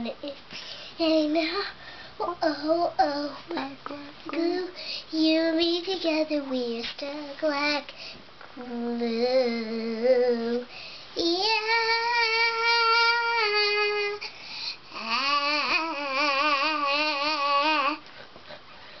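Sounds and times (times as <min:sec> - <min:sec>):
girl singing unaccompanied: 0:00.0 - 0:18.1.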